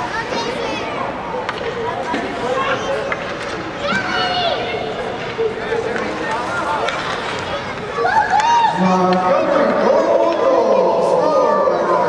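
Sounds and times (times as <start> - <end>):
skates scraping on ice: 5.1 - 8.1.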